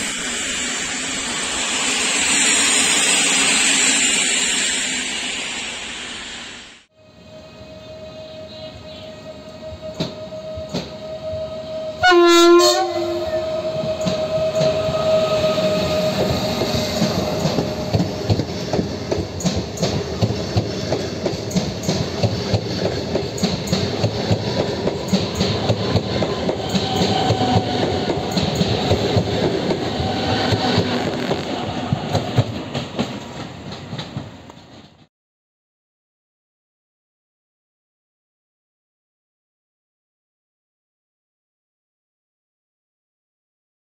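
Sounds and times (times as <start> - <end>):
train rumbling past: 0.0 - 35.1
train horn blast: 6.9 - 18.2.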